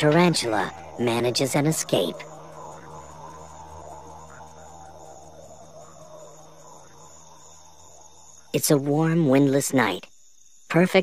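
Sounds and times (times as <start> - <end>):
low hum: 0.0 - 9.4
insects chirring: 0.0 - 11.0.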